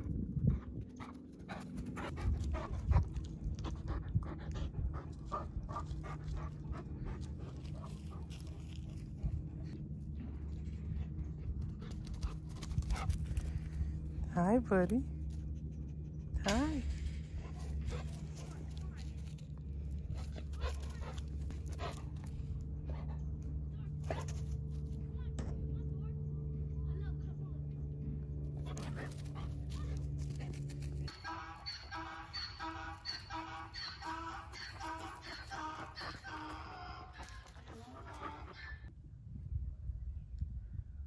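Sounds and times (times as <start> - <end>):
steady low rumble: 0.0 - 31.2, 34.4 - 41.0
low hum: 0.0 - 41.0
dog panting: 0.4 - 9.8, 10.8 - 14.1, 17.3 - 24.6, 28.6 - 38.9.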